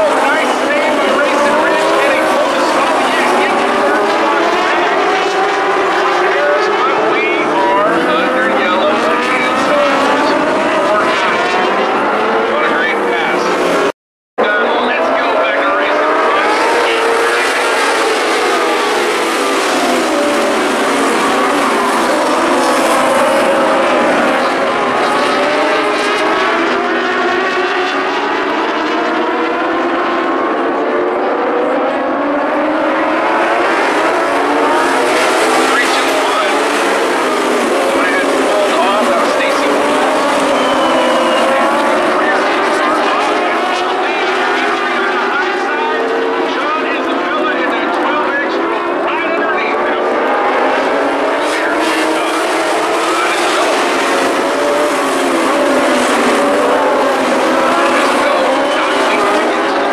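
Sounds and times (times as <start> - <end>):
race car engines high-revving: 0.0 - 59.9.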